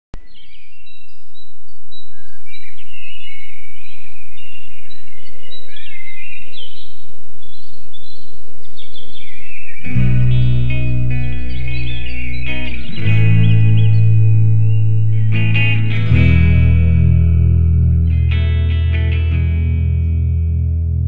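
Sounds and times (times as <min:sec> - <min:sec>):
birds singing: 0:00.2 - 0:20.5
low outdoor rumble: 0:09.9 - 0:21.0.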